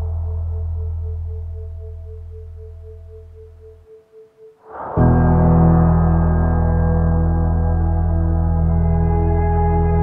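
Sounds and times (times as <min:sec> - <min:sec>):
deep low hum: 0:00.0 - 0:10.0
meditation music: 0:00.0 - 0:10.0
pulsing high tone: 0:00.0 - 0:10.0.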